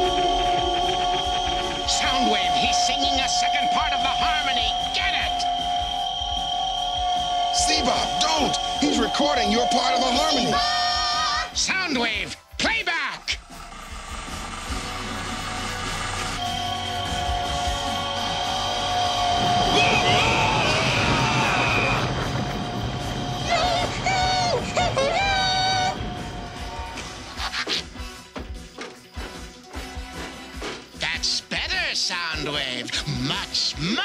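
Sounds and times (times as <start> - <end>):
electronic harmony chord tones: 0.0 - 11.2
low rumble: 13.4 - 27.4.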